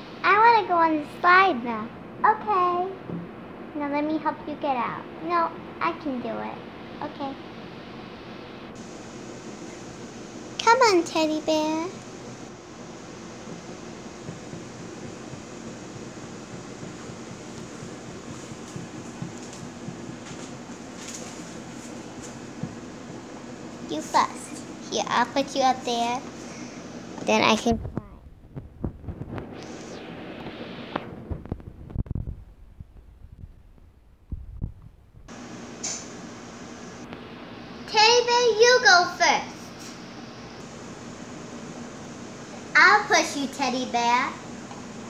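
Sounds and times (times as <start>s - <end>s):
fan hum and hiss: 0.0s - 45.0s.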